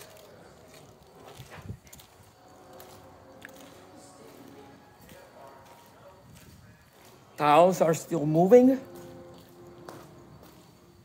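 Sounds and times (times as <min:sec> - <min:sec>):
faint footsteps on paving: 0:00.0 - 0:11.0.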